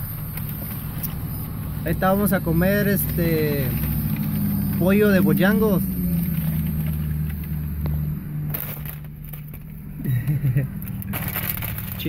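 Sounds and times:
truck engine idling: 0:00.0 - 0:12.0
paper bag rustling: 0:08.5 - 0:09.8, 0:10.8 - 0:12.0.

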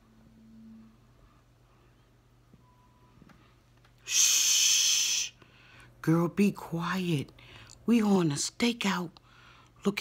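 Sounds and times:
woman shushing: 0:04.0 - 0:05.4.

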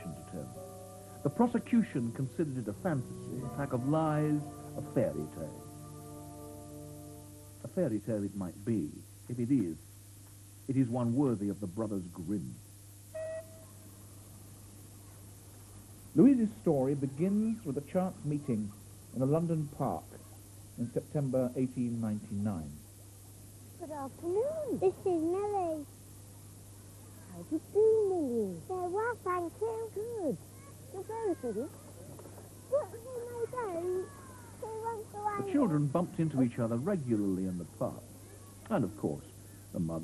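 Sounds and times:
faint low hum: 0:00.0 - 0:40.0
high voice speaking: 0:01.2 - 0:05.6, 0:23.8 - 0:25.8, 0:32.7 - 0:36.5.

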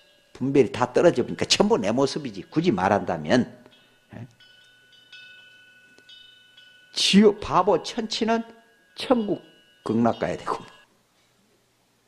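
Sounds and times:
metallic chime ringing: 0:00.0 - 0:11.0.

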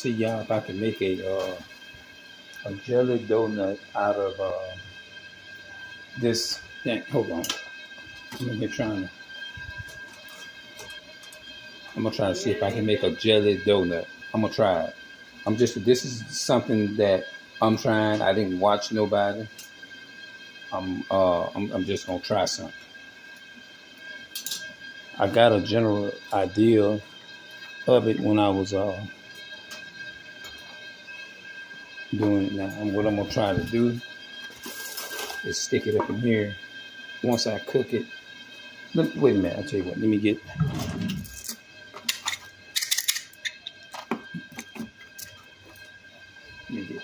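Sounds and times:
dough sizzling in oil: 0:00.0 - 0:47.0.

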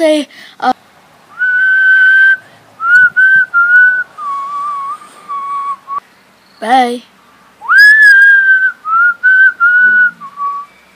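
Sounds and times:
person whistling a tune: 0:01.3 - 0:06.0, 0:07.6 - 0:10.9.

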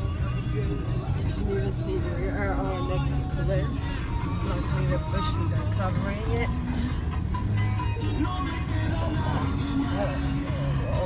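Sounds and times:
music with bass line and melody: 0:00.0 - 0:11.0.

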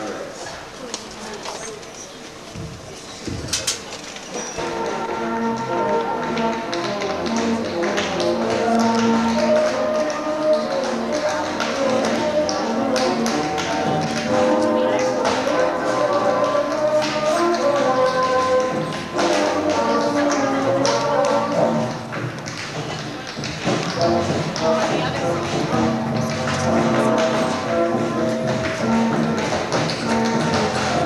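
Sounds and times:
tap shoes on stage floor: 0:00.8 - 0:31.0
recorded music melody: 0:04.6 - 0:22.6, 0:23.4 - 0:31.0.

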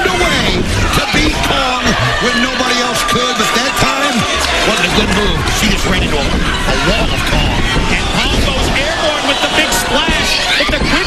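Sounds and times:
arena crowd noise: 0:00.0 - 0:11.0
voices talking: 0:00.0 - 0:11.0.

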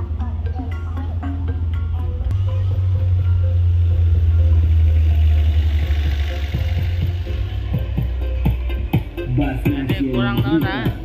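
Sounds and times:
loud deep bass music: 0:00.0 - 0:11.0.

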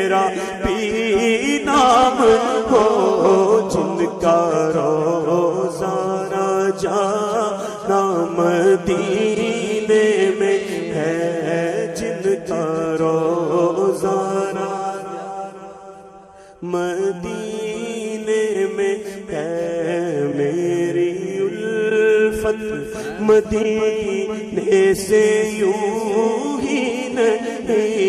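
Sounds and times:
man singing devotional song: 0:00.0 - 0:28.0.

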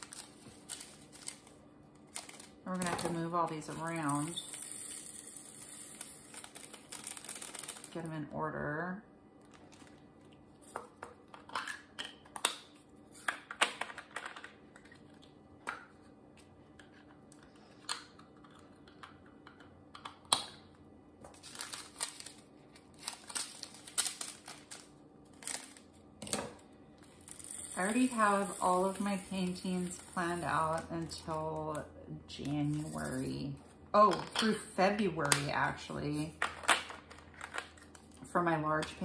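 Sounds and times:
plastic bags crinkling: 0:00.0 - 0:08.1, 0:21.3 - 0:26.0.

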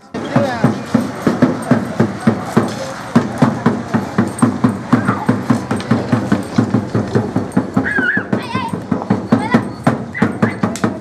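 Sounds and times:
drum beating fast rhythm: 0:00.0 - 0:11.0.

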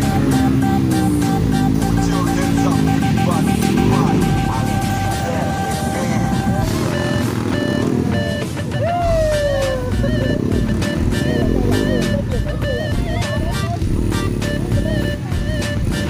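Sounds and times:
dirt bike engine revving: 0:00.0 - 0:16.0
music: 0:00.0 - 0:16.0.

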